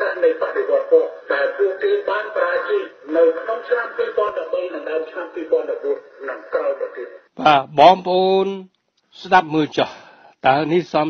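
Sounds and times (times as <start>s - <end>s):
person talking: 0.0s - 8.6s.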